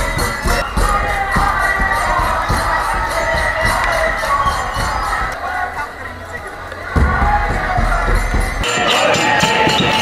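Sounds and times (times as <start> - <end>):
crowd shouting and cheering: 0.0 - 10.0
steady rhythmic beat: 0.0 - 10.0.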